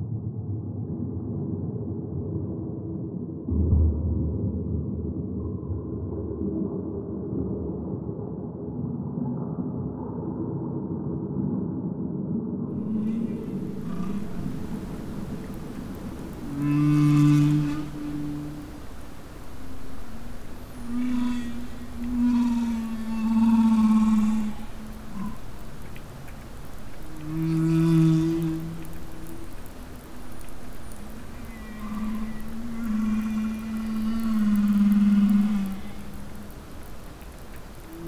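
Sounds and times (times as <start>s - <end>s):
humpback whale song: 12.8s - 38.0s.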